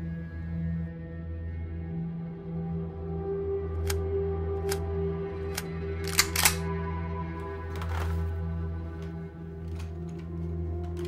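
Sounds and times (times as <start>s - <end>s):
ambient music with drone: 0.0s - 11.0s.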